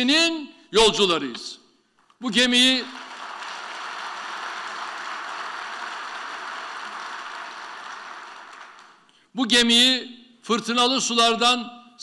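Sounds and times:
audience applauding: 2.7s - 9.1s.

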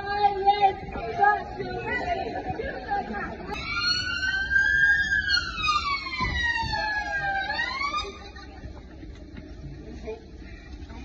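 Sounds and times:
police siren wailing: 3.6s - 8.4s.

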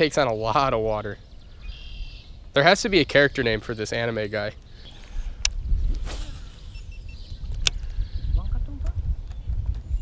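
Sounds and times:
swish of a cast: 5.9s - 6.7s.

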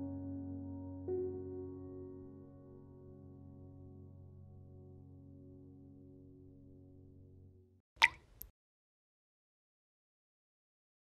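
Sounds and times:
soft background music: 0.0s - 7.8s
water-drop plop effect: 8.0s - 8.5s.

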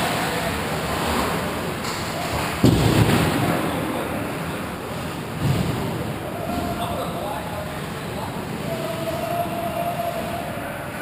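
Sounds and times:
hollow rink noise: 0.0s - 11.0s
heavy thud against rink boards: 2.6s - 3.4s.

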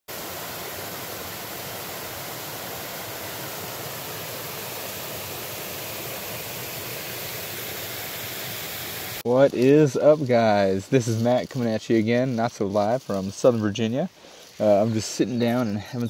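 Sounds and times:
stream rushing over stones: 0.1s - 16.0s.

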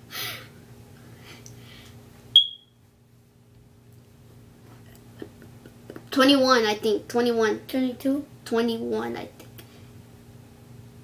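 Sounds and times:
high-pitched electronic beep: 2.4s - 2.7s.

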